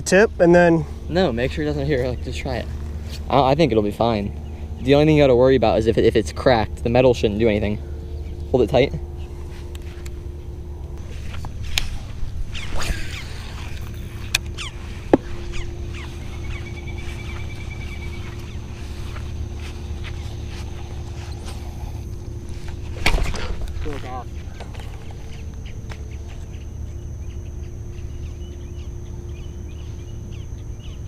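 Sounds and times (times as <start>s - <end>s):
low outdoor rumble: 0.0s - 31.0s.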